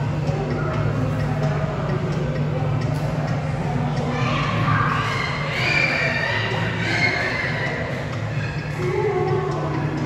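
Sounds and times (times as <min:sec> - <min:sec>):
crowd noise: 0:00.0 - 0:10.0
steady low hum: 0:00.0 - 0:10.0
high wavering voice: 0:03.8 - 0:10.0.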